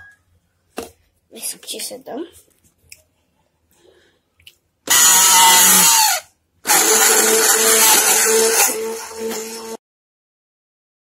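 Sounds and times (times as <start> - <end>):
stick blender whisking batter: 4.9 - 9.8.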